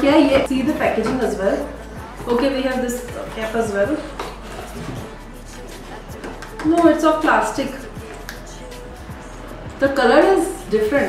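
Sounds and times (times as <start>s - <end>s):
soft background music: 0.0s - 11.0s
cardboard scraping: 4.0s - 5.0s.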